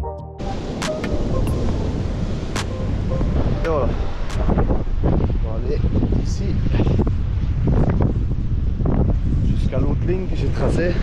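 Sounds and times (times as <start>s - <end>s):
electronic music: 0.0s - 4.6s
wind buffeting microphone: 0.4s - 11.0s.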